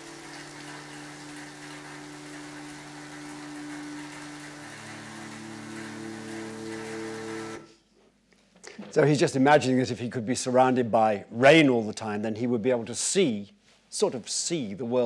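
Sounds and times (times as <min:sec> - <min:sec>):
steady falling rain: 0:00.0 - 0:07.6
soft sustained music chords: 0:00.0 - 0:07.7.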